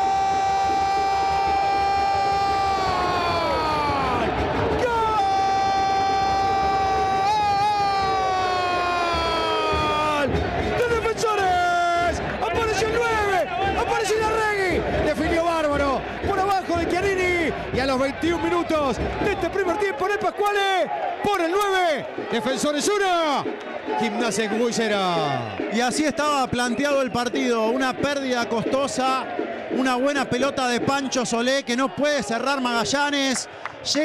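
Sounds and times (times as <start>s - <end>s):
rapid excited shouting: 0.0s - 34.0s.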